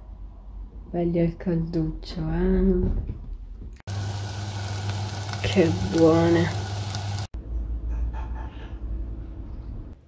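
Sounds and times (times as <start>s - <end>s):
potatoes sizzling in a pot: 3.9s - 7.3s.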